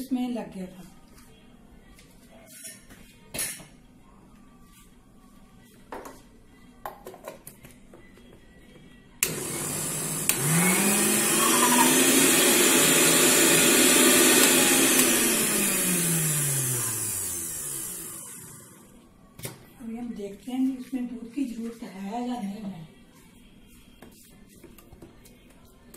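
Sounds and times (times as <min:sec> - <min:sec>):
mixer grinder motor humming: 0:09.2 - 0:18.9.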